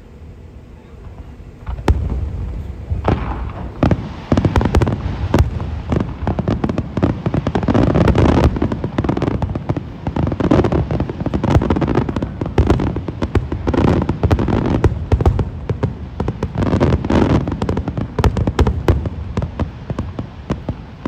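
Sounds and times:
fireworks bursts: 0.0 - 21.0.

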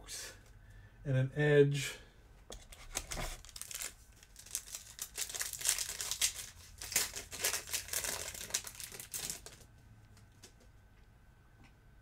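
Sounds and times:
foil wrapper crinkling: 2.7 - 9.7.

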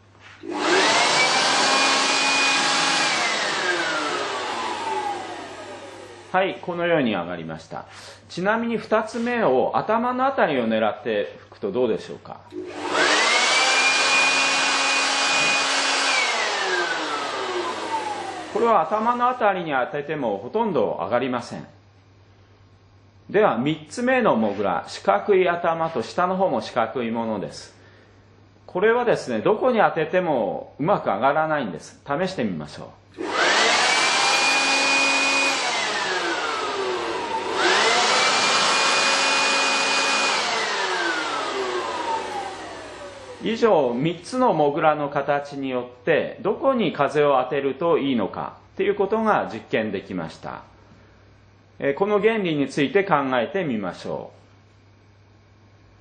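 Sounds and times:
electric blower motor whine: 0.4 - 6.4, 12.5 - 19.1, 33.2 - 44.0.

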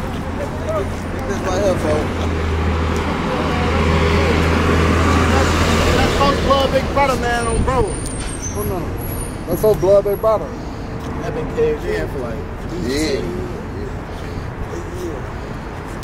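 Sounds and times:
men's voices: 0.0 - 16.0
vehicle passing with engine rumble: 0.0 - 16.0.

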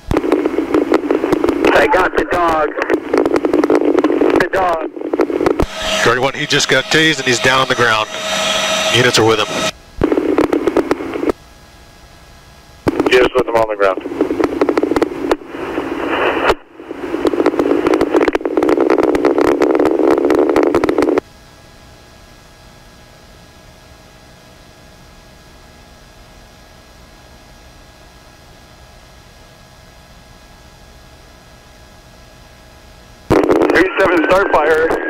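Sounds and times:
radio static: 0.0 - 11.3, 12.9 - 21.2, 33.3 - 35.0
low steady hiss with hum: 0.0 - 35.0.

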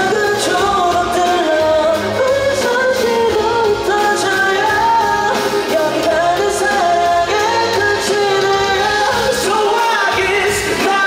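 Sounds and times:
pop rock band with singing: 0.0 - 11.0.

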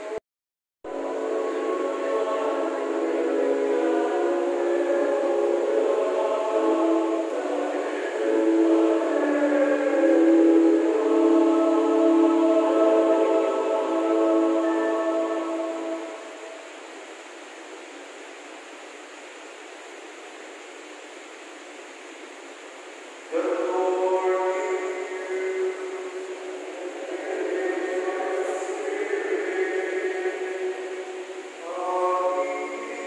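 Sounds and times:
choir singing chant: 0.9 - 16.7, 23.3 - 33.0
murmur of congregation: 0.9 - 16.8, 23.3 - 33.0.

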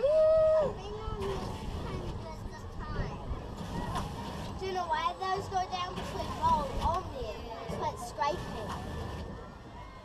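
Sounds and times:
children talking and calling out: 0.0 - 10.0.

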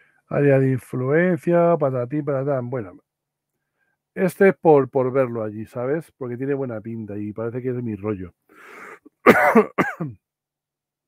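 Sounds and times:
man coughing: 9.2 - 10.2.

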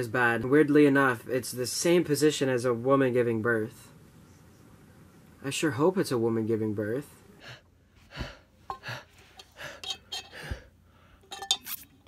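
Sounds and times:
metal straw clinking on cup: 9.4 - 10.4, 11.2 - 12.0.

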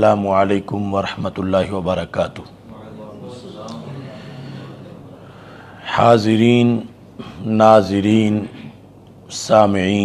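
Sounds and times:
man speaking: 0.0 - 5.2
man breathing: 4.1 - 5.8.

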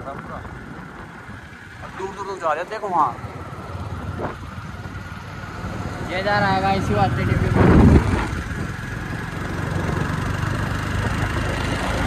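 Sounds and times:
motorcycle engine running: 0.0 - 12.0
road noise: 0.0 - 12.0
wind noise: 3.8 - 12.0.

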